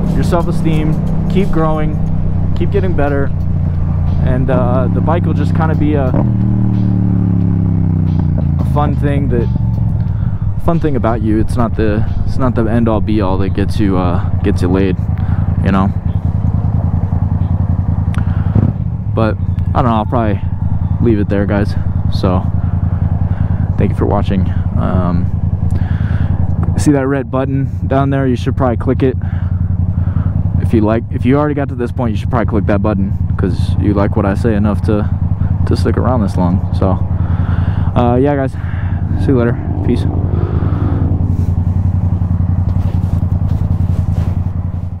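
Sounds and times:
motorcycle engine idling: 0.0s - 45.0s.

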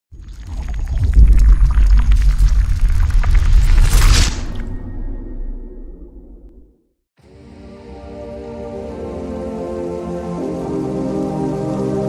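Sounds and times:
deep rumble: 0.5s - 6.9s.

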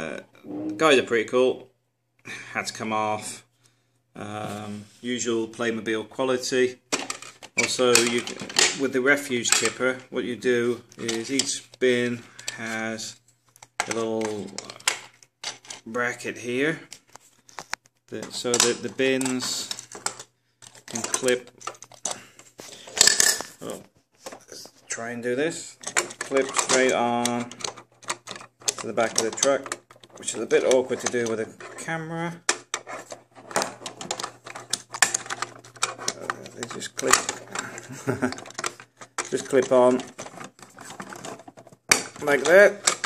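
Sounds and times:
man saying oh: 0.4s - 1.0s
plastic toy parts clattering: 6.9s - 10.0s, 10.9s - 15.9s, 16.9s - 24.7s, 25.6s - 43.0s.

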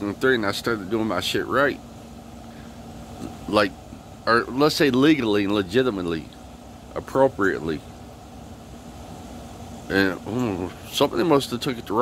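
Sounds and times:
man speaking: 0.0s - 1.8s, 3.2s - 7.9s, 9.9s - 12.0s
low outdoor rumble: 0.0s - 12.0s.

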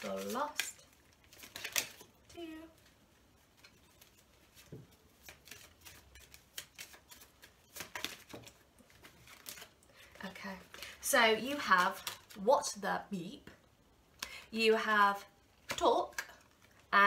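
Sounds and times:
cards being shuffled: 0.0s - 12.5s.

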